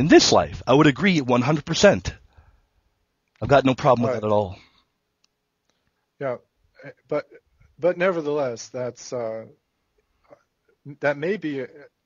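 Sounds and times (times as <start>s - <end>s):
man speaking: 0.0s - 2.2s, 3.4s - 4.7s, 6.2s - 9.6s, 10.9s - 12.0s.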